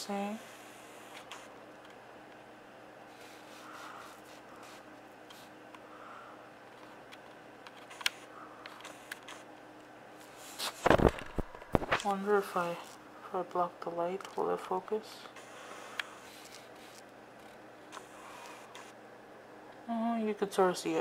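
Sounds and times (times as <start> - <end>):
faint steady hum: 0.0 - 21.0
hand bumping camera: 10.7 - 12.0.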